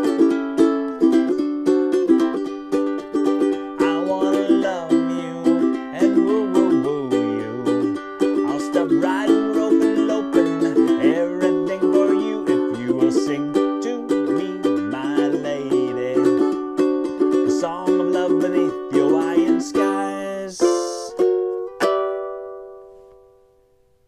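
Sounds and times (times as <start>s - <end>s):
ukulele strumming: 0.0s - 23.8s.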